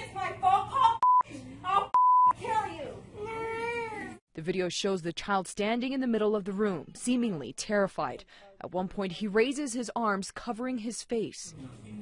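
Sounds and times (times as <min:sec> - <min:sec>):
censor bleeps: 0:01.0 - 0:01.2, 0:02.0 - 0:02.4.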